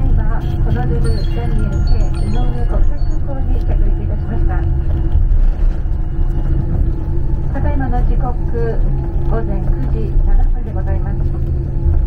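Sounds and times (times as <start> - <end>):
aircraft cabin rumble: 0.0 - 12.0
idling jet engines hum: 0.0 - 12.0
passengers' voices: 0.0 - 12.0.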